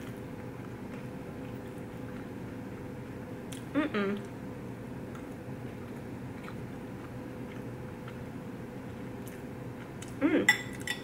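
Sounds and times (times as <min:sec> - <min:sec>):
quiet chewing: 0:00.0 - 0:02.4, 0:05.1 - 0:10.2
steady low hum: 0:00.0 - 0:11.0.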